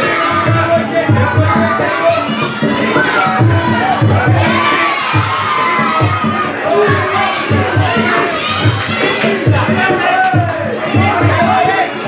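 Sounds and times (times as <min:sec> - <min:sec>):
low thumping beat: 0:00.0 - 0:11.9
crowd shouting and cheering: 0:00.0 - 0:12.0.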